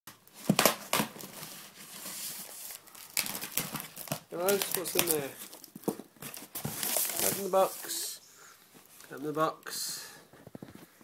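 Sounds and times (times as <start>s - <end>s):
cardboard box crinkling: 0.3s - 8.0s.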